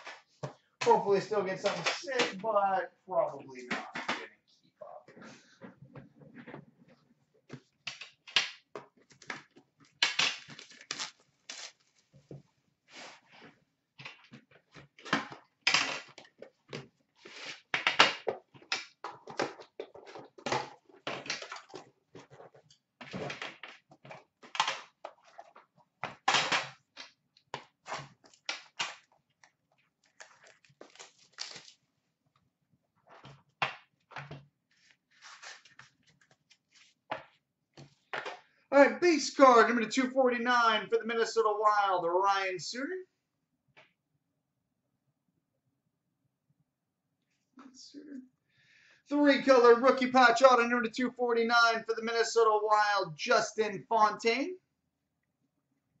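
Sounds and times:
plastic shrink wrap crackling: 0:10.3 - 0:12.1, 0:30.0 - 0:31.8.

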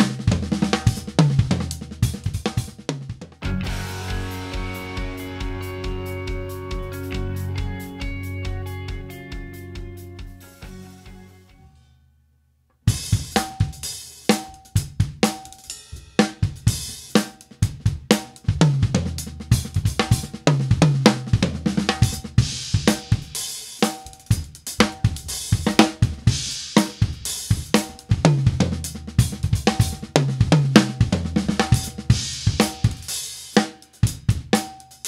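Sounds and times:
acoustic drum kit playing: 0:00.0 - 0:11.6, 0:12.8 - 0:35.0
short music passage: 0:03.5 - 0:12.1.

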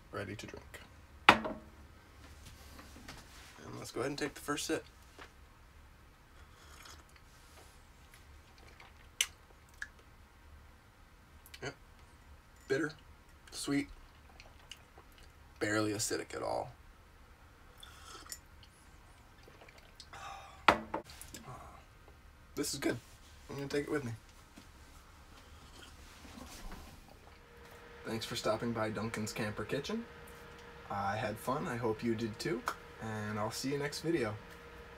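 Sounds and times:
sharp knock: 0:01.3 - 0:01.7
person slurping coffee: 0:06.4 - 0:07.3, 0:17.8 - 0:18.4.

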